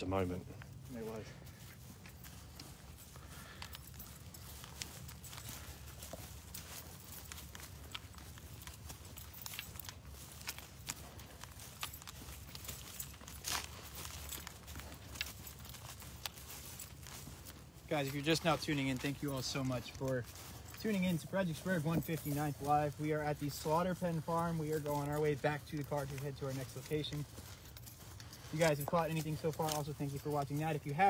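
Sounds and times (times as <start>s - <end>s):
footsteps crunching through stubble: 0.0s - 31.0s.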